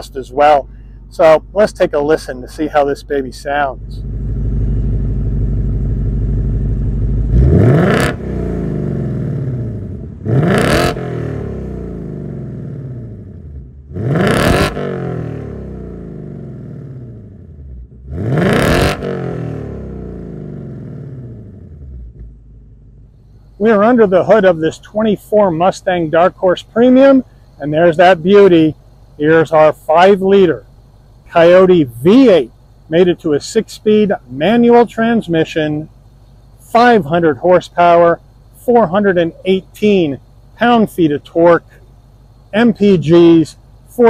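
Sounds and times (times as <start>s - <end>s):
car engine idling and revving: 0.0s - 44.0s.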